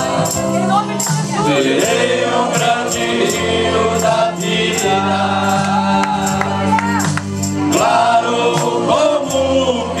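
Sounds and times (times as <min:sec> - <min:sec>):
men's vocal group singing a hymn: 0:00.0 - 0:10.0.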